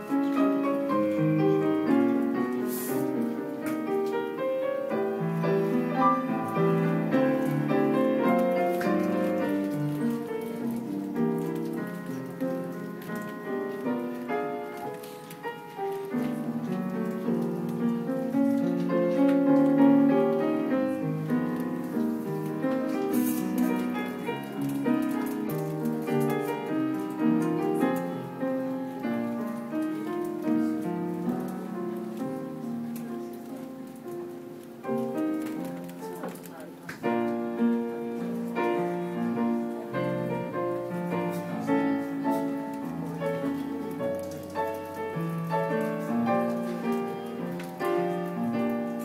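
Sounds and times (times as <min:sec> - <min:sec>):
piano: 0:00.0 - 0:49.0
light crackle of ticks: 0:05.4 - 0:49.0.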